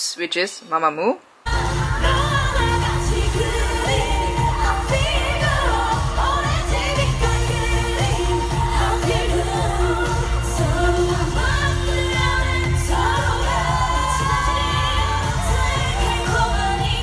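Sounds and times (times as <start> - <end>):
group singing live: 1.5 - 17.0
pop backing track with booming bass: 1.5 - 17.0.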